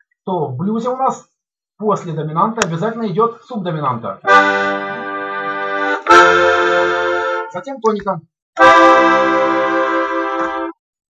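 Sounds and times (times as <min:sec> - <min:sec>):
accordion sustained chord: 0:04.2 - 0:07.6, 0:08.6 - 0:10.8.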